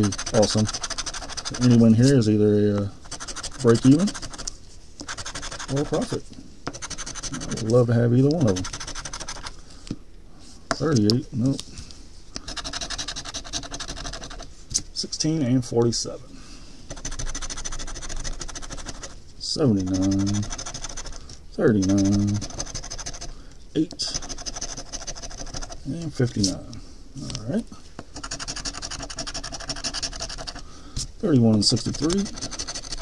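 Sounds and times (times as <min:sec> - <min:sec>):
coin scraping lottery ticket: 0:00.0 - 0:02.2, 0:17.0 - 0:23.3
coin scraping scratch-off ticket: 0:00.0 - 0:02.3, 0:03.1 - 0:04.5, 0:05.1 - 0:09.5, 0:16.9 - 0:23.3, 0:24.0 - 0:26.6, 0:31.6 - 0:33.0.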